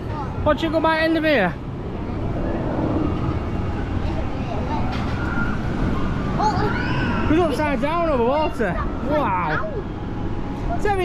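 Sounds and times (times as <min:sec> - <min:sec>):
distant voices: 0:00.0 - 0:11.0
steady low rumble: 0:01.6 - 0:04.9.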